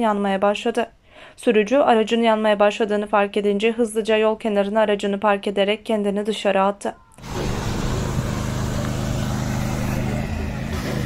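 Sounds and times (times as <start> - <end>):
fire truck engine running: 7.2 - 11.0.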